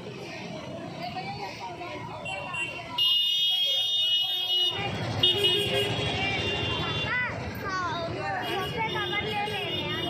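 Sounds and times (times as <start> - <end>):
street crowd chatter: 0.0 - 10.0.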